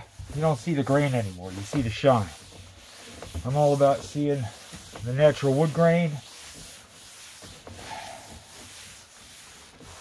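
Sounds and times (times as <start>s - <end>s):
cloth scrubbing over wood: 0.0s - 10.0s.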